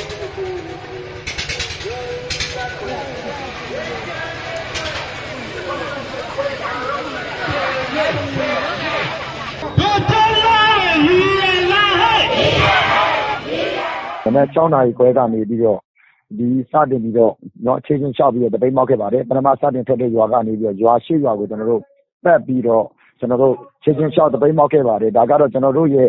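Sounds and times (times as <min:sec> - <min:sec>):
rapid rustling or clattering: 0:00.0 - 0:06.2
distant crowd voices: 0:00.0 - 0:14.5.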